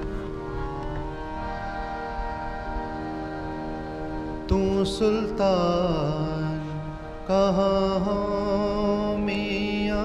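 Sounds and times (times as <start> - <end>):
harmonium drone: 0.0 - 10.0
person chanting a hymn: 3.7 - 10.0.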